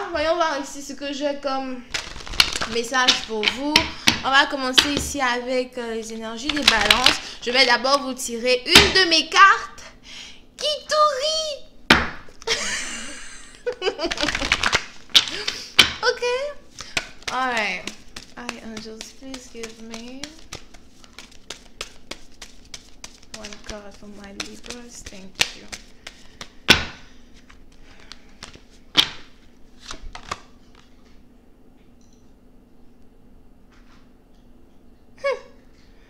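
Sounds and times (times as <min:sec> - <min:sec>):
card slaps: 0:01.9 - 0:04.2, 0:06.4 - 0:07.2, 0:13.7 - 0:16.0, 0:16.8 - 0:27.1, 0:28.0 - 0:30.5
cards being shuffled: 0:01.9 - 0:05.1, 0:06.4 - 0:07.3, 0:13.6 - 0:31.0
sharp card snaps: 0:28.4 - 0:30.4.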